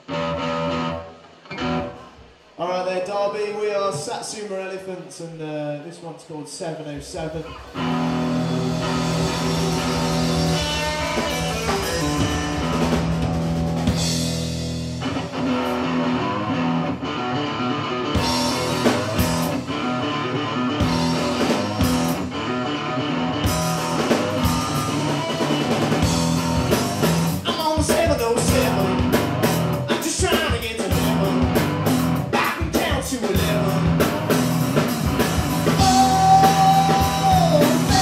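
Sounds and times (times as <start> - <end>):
electric guitar: 0.0 - 2.6, 7.1 - 38.0
drum kit playing: 7.0 - 17.0, 18.0 - 38.0.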